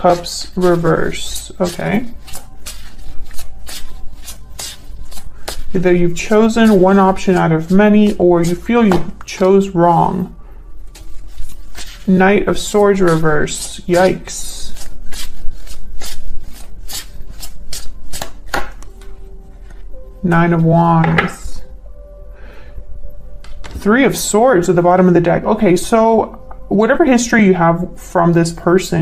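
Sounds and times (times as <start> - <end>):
cards being shuffled: 0.1 - 9.2, 10.9 - 19.8.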